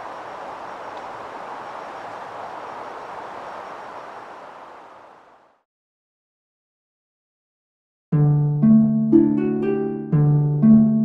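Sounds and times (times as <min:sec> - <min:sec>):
woodland background hiss: 0:00.0 - 0:05.6.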